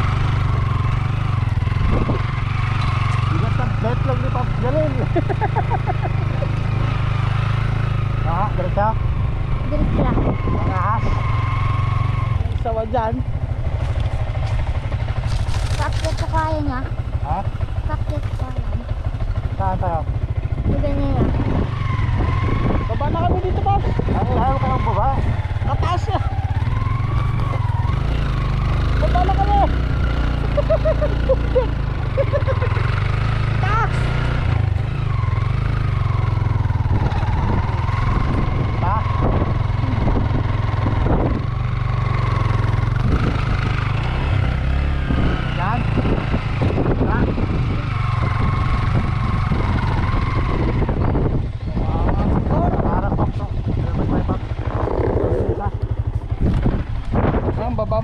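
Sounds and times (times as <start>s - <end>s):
motorcycle engine running: 0.0s - 58.0s
wind rumble on microphone: 1.4s - 2.6s, 8.5s - 11.2s, 17.3s - 32.6s, 34.4s - 58.0s.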